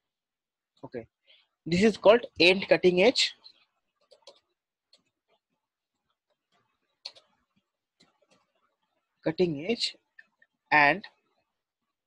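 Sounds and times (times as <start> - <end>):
soft keyboard typing: 3.4 - 9.1.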